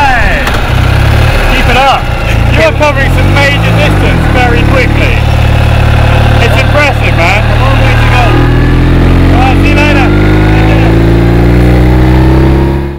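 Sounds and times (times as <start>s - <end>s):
motorcycle engine revving: 0.0s - 12.9s.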